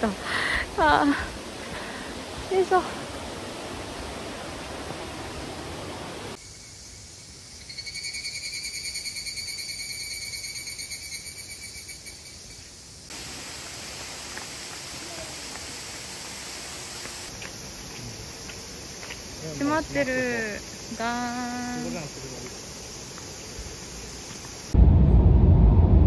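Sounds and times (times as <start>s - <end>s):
rushing of falling water: 0.0s - 6.4s, 13.1s - 17.3s
insect pulsing high trill: 6.4s - 12.6s.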